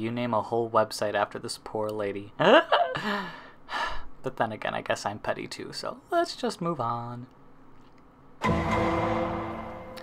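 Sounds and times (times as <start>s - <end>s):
transition noise burst with tones: 8.4s - 10.0s.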